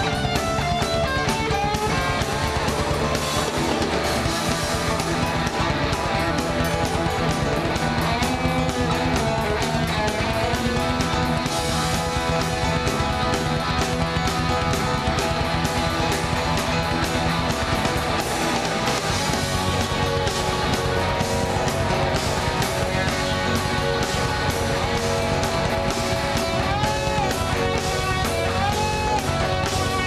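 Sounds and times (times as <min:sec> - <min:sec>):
live rock band playing: 0:00.0 - 0:30.0.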